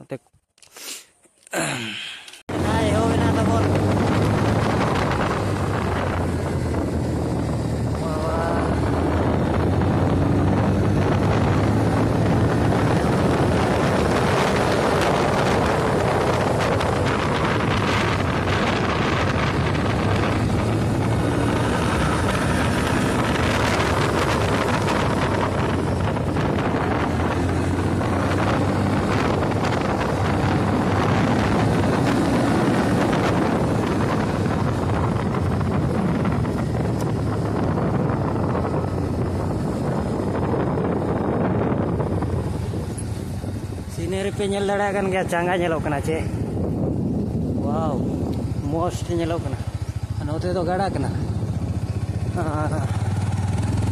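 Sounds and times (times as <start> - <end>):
wind rushing over microphone: 2.4 - 53.9
motorcycle engine running: 2.5 - 53.9.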